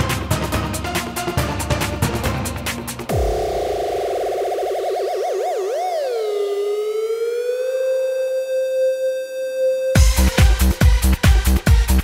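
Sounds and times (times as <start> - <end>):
dance music beat: 2.5 - 7.9, 10.0 - 12.0
wobbling synthesizer note: 3.1 - 10.0.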